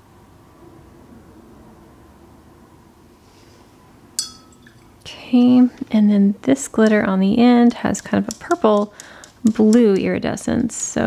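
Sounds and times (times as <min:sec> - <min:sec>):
paintbrush clinking on container: 0:04.2 - 0:05.8, 0:06.8 - 0:10.4.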